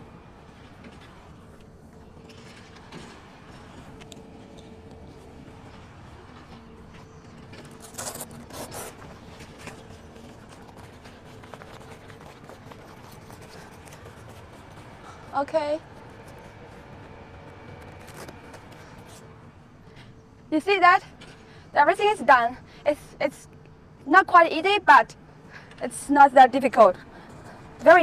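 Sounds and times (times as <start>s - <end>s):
faint hum: 0.0s - 28.0s
tent zipper pulled: 7.8s - 9.8s, 17.7s - 19.2s.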